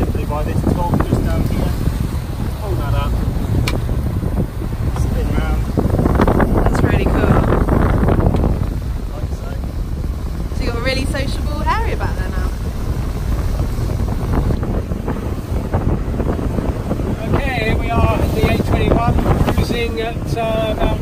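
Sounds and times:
outboard engines rumbling: 0.0s - 21.0s
water rushing past hull: 0.0s - 21.0s
wind buffeting microphone: 0.0s - 21.0s.

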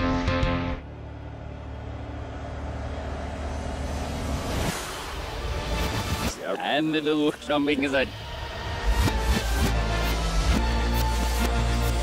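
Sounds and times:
low rumbling drone with hiss: 0.0s - 12.0s.

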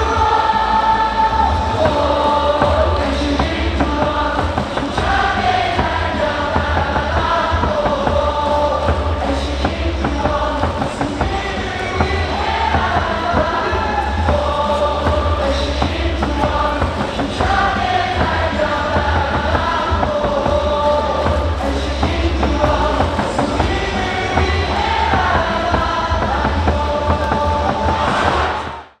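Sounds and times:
amplified backing music: 0.0s - 29.0s
crowd singing in unison: 0.0s - 29.0s.

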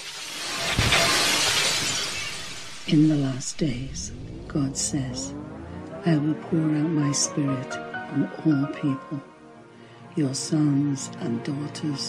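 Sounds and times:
bright glassy crash: 0.0s - 4.4s
rising swell: 0.0s - 10.7s
low hit: 0.6s - 6.0s.

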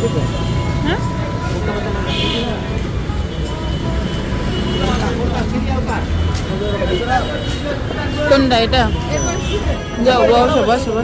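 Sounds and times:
auto-rickshaw engines rumbling: 0.0s - 11.0s
street traffic: 0.0s - 11.0s
voices talking: 0.0s - 11.0s.

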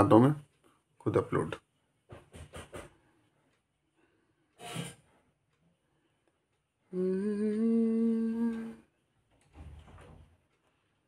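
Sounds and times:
man humming: 6.9s - 8.8s.

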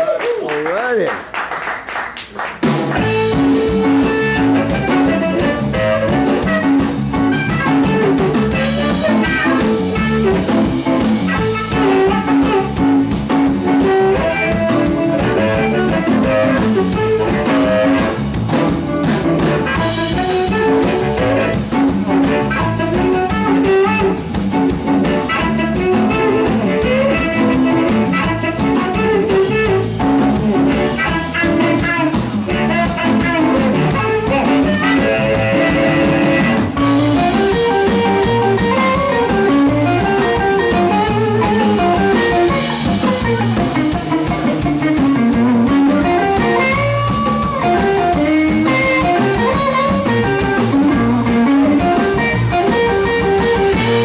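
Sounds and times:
drum kit: 0.0s - 54.0s
electric guitar: 2.5s - 54.0s
electric bass: 2.6s - 54.0s
harmonica lead lines: 2.9s - 54.0s.

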